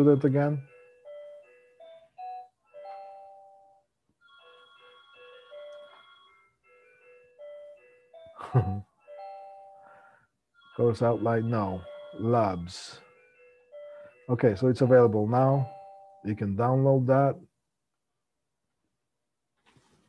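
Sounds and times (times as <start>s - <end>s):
man's voice: 0.0s - 0.6s, 8.4s - 8.8s, 10.8s - 13.0s, 14.3s - 15.7s, 16.3s - 17.4s
simple electronic tune: 0.0s - 10.0s, 10.6s - 16.4s.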